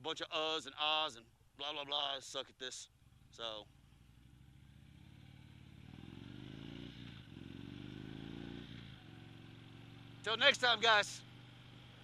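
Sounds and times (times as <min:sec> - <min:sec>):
motorcycle accelerating: 0:03.0 - 0:12.0.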